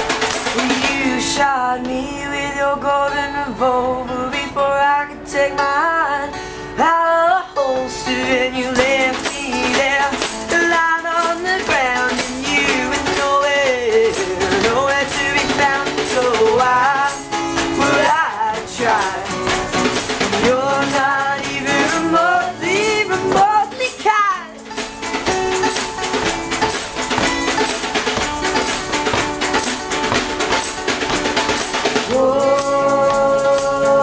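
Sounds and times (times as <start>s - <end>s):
snare drum played with sticks: 0.0s - 1.4s, 8.8s - 33.9s
strummed acoustic guitar: 0.0s - 34.0s
young man singing: 0.4s - 24.6s, 32.0s - 34.0s
shaker: 8.8s - 34.0s.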